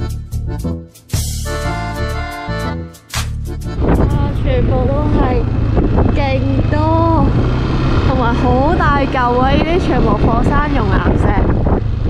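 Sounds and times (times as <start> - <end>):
motor scooter rumble: 3.6 - 12.0
wind on microphone: 3.7 - 12.0
person talking: 3.9 - 5.5, 6.1 - 7.4, 8.1 - 11.5.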